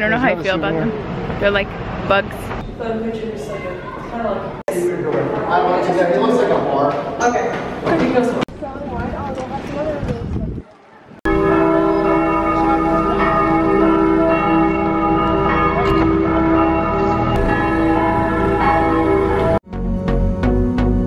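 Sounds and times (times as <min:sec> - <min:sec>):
church bells ringing: 0:11.2 - 0:19.6.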